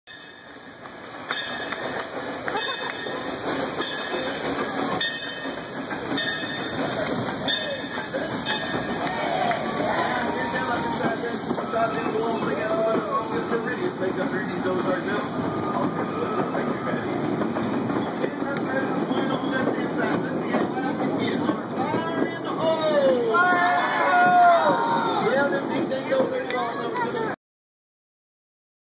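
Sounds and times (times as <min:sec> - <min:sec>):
train wheels clicking over rail joints: 0:00.1 - 0:27.2
train rumble: 0:00.1 - 0:27.4
riders' voices: 0:02.2 - 0:27.4.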